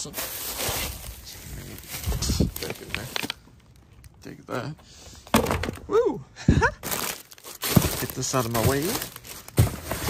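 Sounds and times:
plastic bags rustling: 0.0 - 3.7, 6.8 - 10.0.

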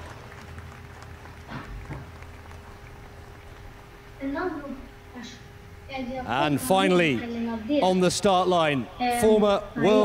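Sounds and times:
steady faint hum: 0.0 - 10.0.

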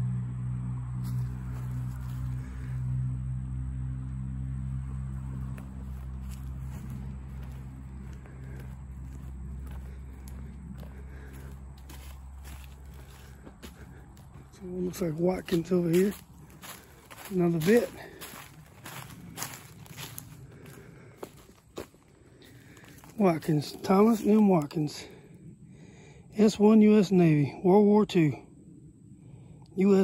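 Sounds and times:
low mechanical hum: 0.0 - 26.4
footsteps crunching on dry leaves: 1.0 - 2.9, 4.9 - 25.2.

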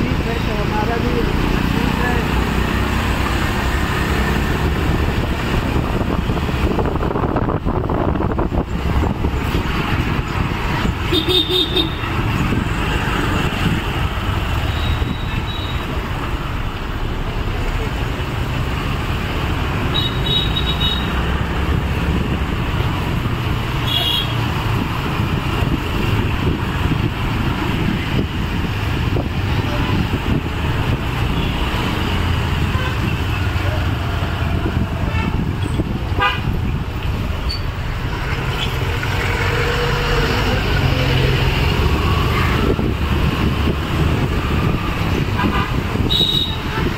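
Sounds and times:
vehicle engines rumbling: 0.0 - 46.9
horn toots: 45.4 - 46.9.

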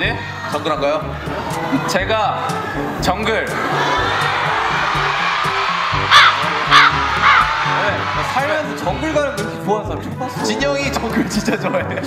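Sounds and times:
background music with steady beat: 0.0 - 12.0
crow cawing: 6.1 - 7.8.

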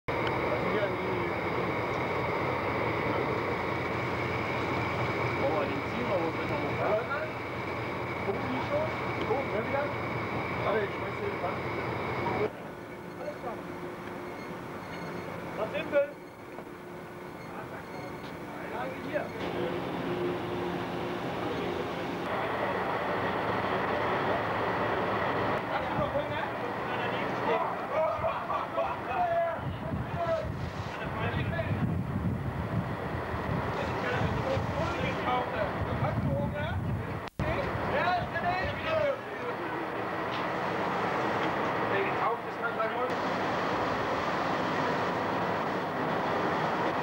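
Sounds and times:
ship rumble and rushing water: 0.1 - 17.2, 17.8 - 47.0
faint low engine hum: 0.1 - 47.0.

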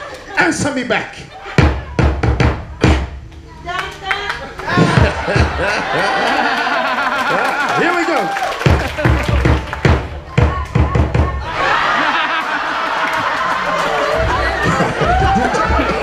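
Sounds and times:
audience voices: 0.0 - 16.0
drum beats: 1.4 - 16.0.

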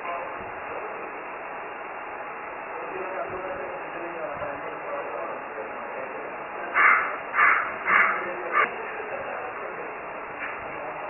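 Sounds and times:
crow cawing: 6.7 - 8.7.

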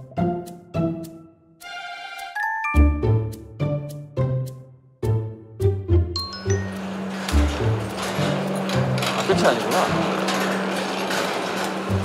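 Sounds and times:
footsteps on metal grating stairs: 6.6 - 12.0.

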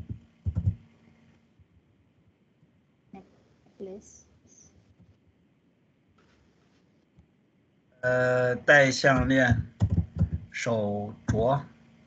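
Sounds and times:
computer keyboard keystrokes: 0.0 - 0.8, 9.2 - 10.5.

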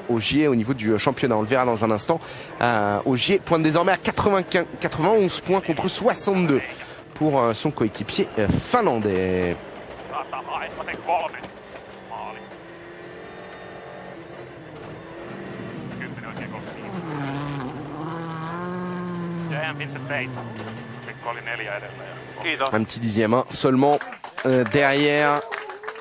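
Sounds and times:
rally car engine running hard: 0.0 - 23.7.

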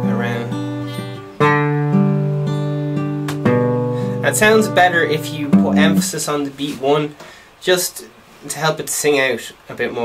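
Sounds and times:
fingerpicked acoustic guitar: 0.0 - 6.8.

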